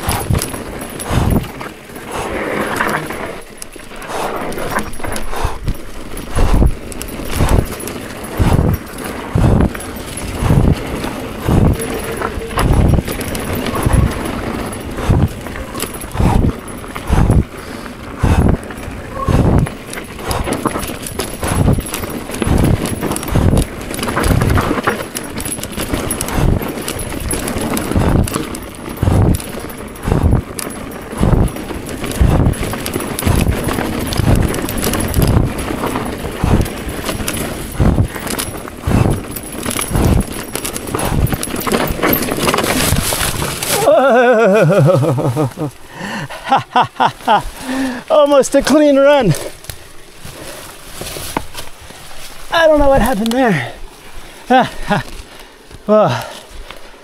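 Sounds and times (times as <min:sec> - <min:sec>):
bike rattling over rough ground: 0:00.0 - 0:57.0.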